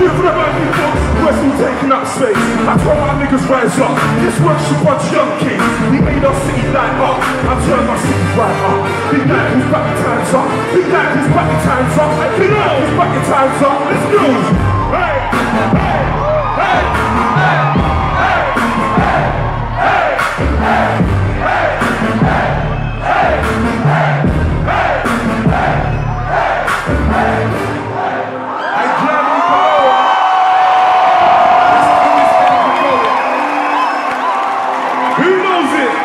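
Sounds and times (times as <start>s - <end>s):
heavy bass beat: 0.0s - 10.0s, 14.0s - 27.6s
crowd cheering and yelling: 0.0s - 36.0s
crowd shouting along: 14.3s - 36.0s.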